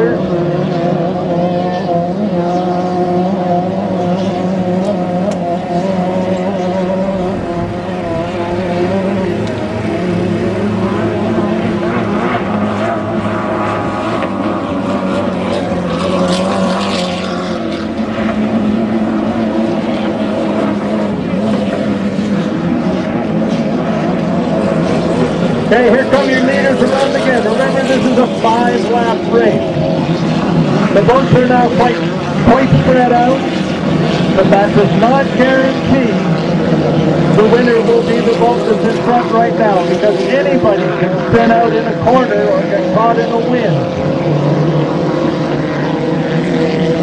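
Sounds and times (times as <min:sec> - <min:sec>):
racing boat engines droning: 0:00.0 - 0:47.0.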